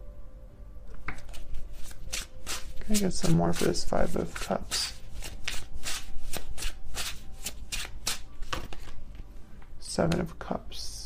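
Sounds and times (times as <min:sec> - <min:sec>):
cards being shuffled: 0:01.0 - 0:09.3.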